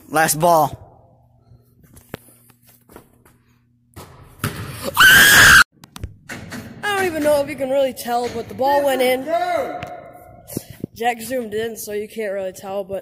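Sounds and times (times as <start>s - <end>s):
boy screaming in excitement: 5.0s - 5.6s.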